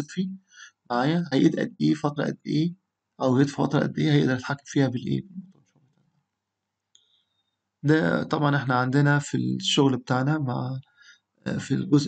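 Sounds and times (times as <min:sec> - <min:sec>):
faint high tone: 0:00.0 - 0:05.5, 0:07.8 - 0:10.8.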